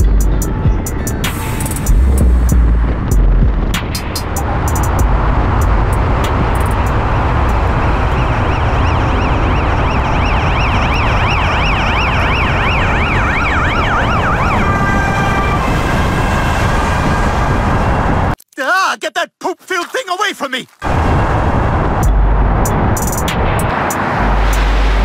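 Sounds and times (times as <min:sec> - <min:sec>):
car engine and road noise: 0:00.0 - 0:18.4, 0:20.8 - 0:25.0
siren rising and falling: 0:04.4 - 0:18.4.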